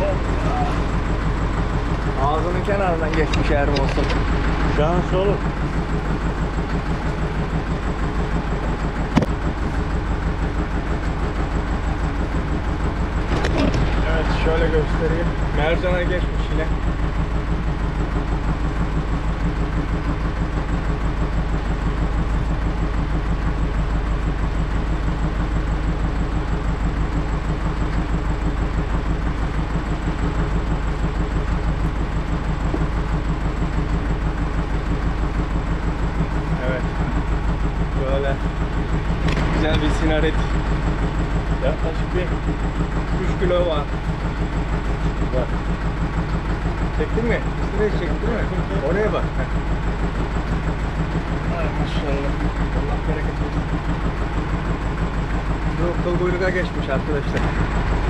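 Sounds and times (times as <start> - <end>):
boat engine idling: 0.0 - 58.0
short knocks and clicks: 9.1 - 9.4.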